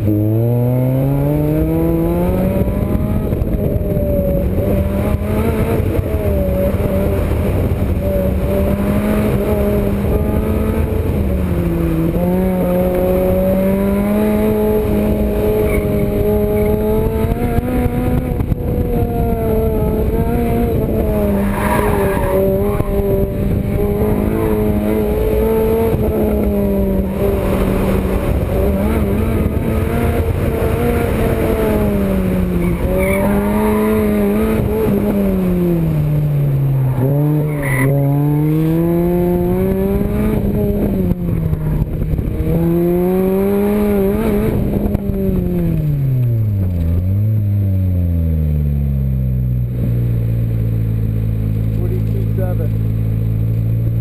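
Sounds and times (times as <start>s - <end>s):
car engine revving: 0.0s - 54.0s
tyre squeal: 21.3s - 22.9s, 37.5s - 38.0s.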